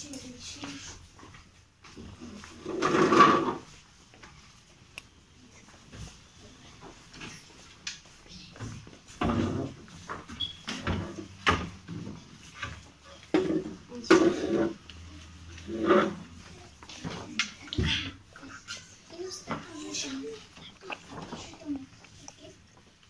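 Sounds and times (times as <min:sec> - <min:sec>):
children's voices: 0:00.0 - 0:01.1, 0:13.1 - 0:22.9.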